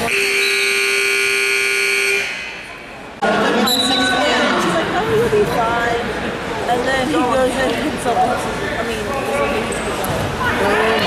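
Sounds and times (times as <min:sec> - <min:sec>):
scoreboard buzzer: 0:00.0 - 0:02.6.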